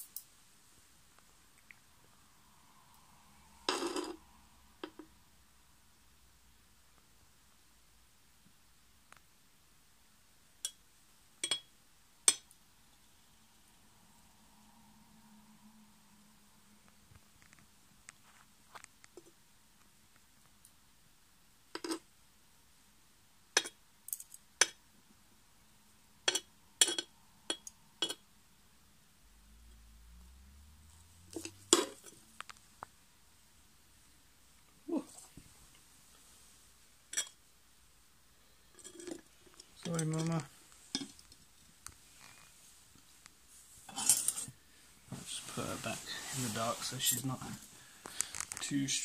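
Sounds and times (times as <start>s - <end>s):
metal tweezers clinking on glass: 11.4s - 11.7s
faint low rumble: 12.8s - 18.6s, 27.3s - 35.9s.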